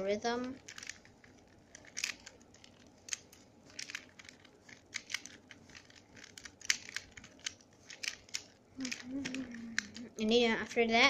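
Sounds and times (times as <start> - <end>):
plastic puzzle pieces clicking: 0.4 - 10.0.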